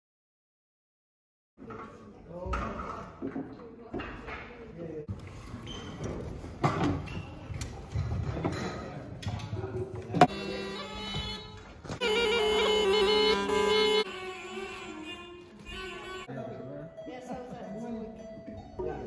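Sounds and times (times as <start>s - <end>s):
reedy wind instrument note: 10.3s - 16.3s.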